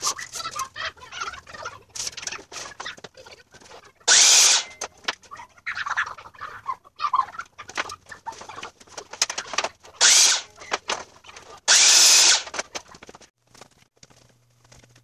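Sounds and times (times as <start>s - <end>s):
miter saw cutting board: 4.1s - 4.7s, 10.0s - 10.6s, 11.7s - 12.6s
boards knocking and clattering: 7.6s - 11.6s.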